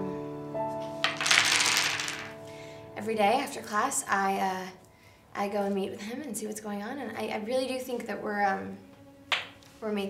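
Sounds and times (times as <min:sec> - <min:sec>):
chess pieces clattering on wood: 0:01.0 - 0:02.4.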